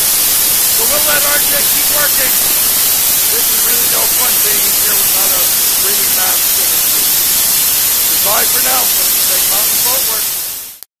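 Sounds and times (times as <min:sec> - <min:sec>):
sandblasting nozzle hissing: 0:00.0 - 0:10.9.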